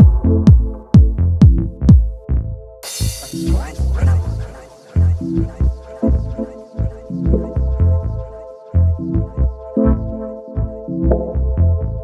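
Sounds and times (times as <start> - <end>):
heavy kick and bass thumps: 0.0 - 2.3, 2.9 - 4.4.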